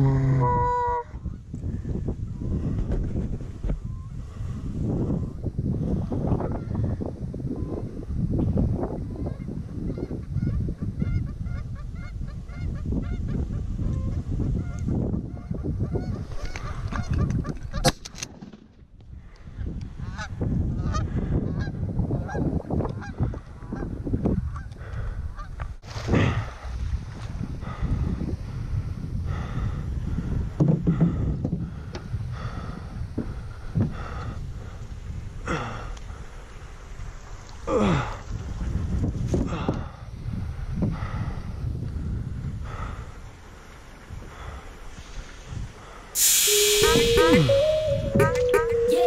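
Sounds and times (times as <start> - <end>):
goose honking: 0.0 - 1.0
wind rumble on microphone: 0.0 - 18.0, 18.8 - 46.1.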